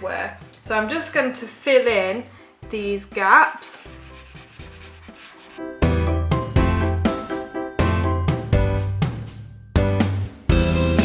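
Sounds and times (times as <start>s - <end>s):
background music: 0.0s - 11.0s
marker rubbing on paper: 2.8s - 5.8s.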